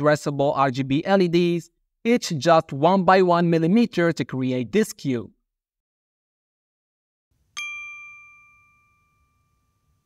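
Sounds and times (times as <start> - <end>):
bright chime ding: 7.6 - 10.0.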